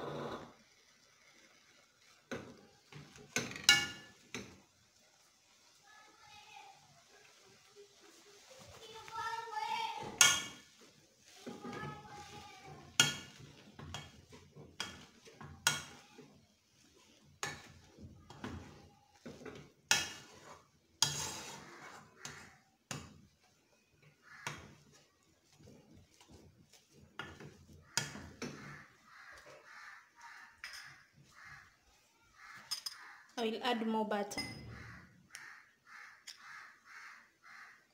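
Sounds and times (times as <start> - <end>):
potatoes being mashed: 6.7 - 33.2.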